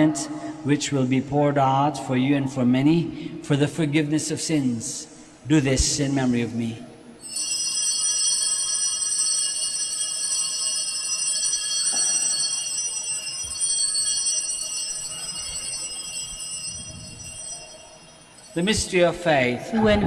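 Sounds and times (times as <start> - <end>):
altar bells ringing: 7.2 - 19.8.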